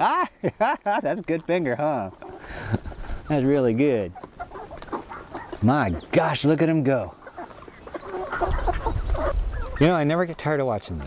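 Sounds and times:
chickens clucking and chirping: 0:00.0 - 0:11.0.

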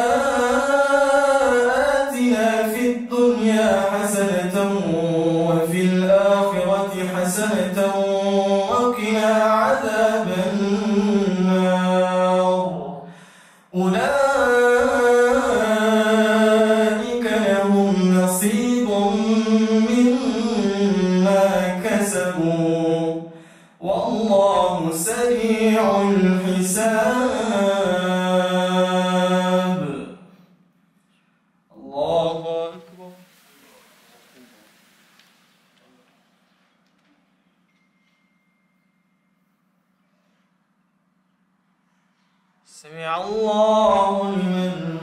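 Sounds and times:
man chanting recitation: 0:00.0 - 0:13.1, 0:13.7 - 0:30.2, 0:31.7 - 0:34.8, 0:42.7 - 0:45.0.

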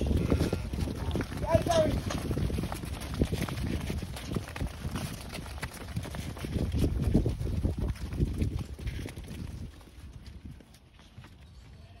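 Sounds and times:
sheep hooves on dirt: 0:00.0 - 0:12.0.

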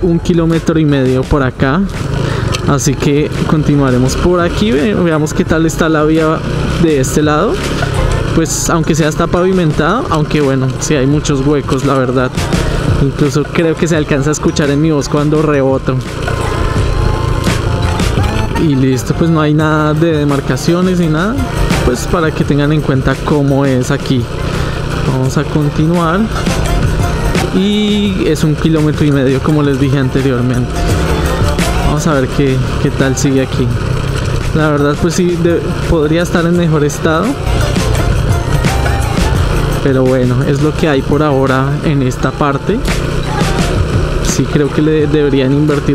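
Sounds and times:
faint music: 0:00.0 - 0:45.9
motorcycle engine rumble: 0:00.0 - 0:45.9.

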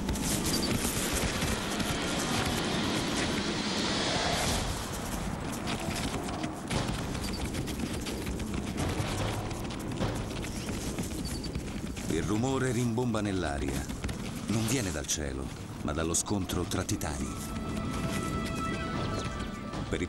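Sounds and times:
hooves pounding and bodies colliding: 0:00.0 - 0:20.0
scuffling rumble: 0:00.0 - 0:20.0.

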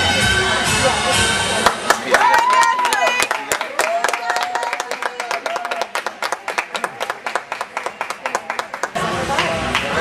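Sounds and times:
audience clapping: 0:01.6 - 0:10.0.

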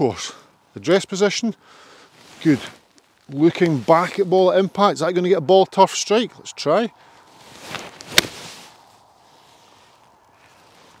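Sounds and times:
golf iron striking ball and turf: 0:07.7 - 0:08.5.

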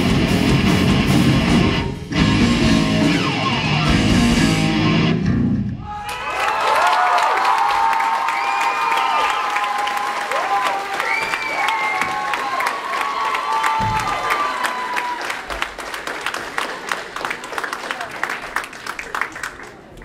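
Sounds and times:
rock band music: 0:00.0 - 0:05.9
people whooping: 0:05.8 - 0:15.6
audience clapping and cheering: 0:05.9 - 0:20.0.

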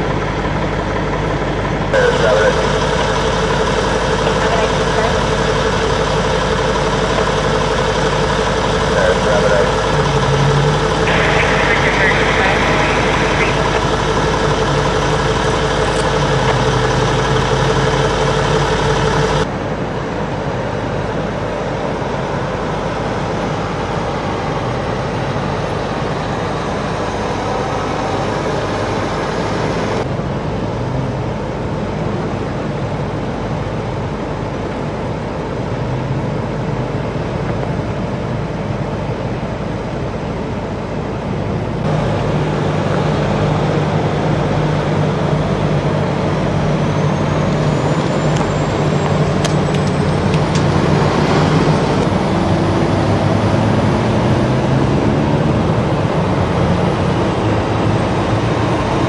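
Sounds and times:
constant whine: 0:00.0 - 0:59.0
fire engine idling: 0:00.0 - 0:59.0.

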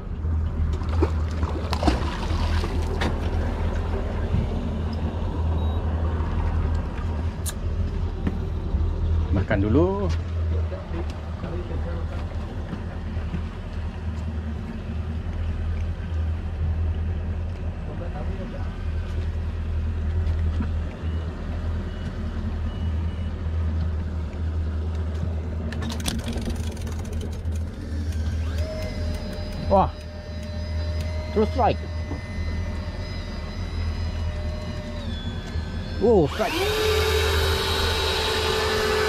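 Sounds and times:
boat engine idling: 0:00.0 - 0:39.0
electric reel motor whine: 0:26.5 - 0:39.0.

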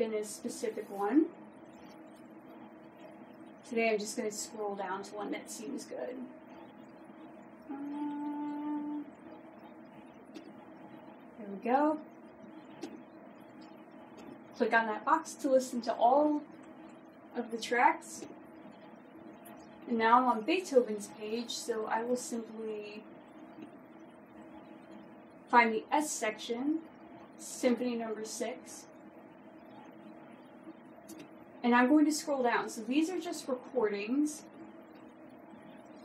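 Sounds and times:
woman saying uhhh: 0:07.7 - 0:09.1.

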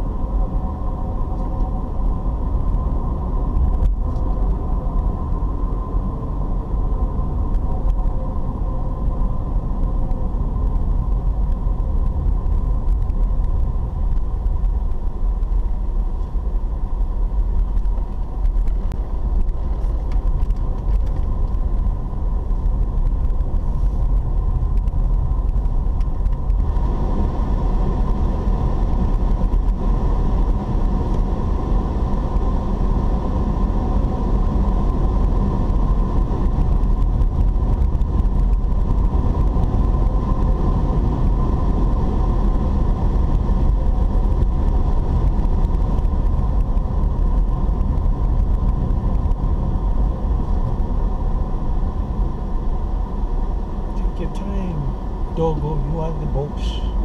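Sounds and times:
car interior engine and road noise: 0:00.0 - 0:57.0.

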